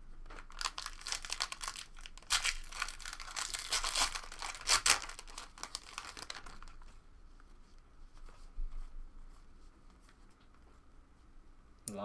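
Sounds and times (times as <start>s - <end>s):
foil wrapper tearing and crinkling: 0.3s - 6.8s.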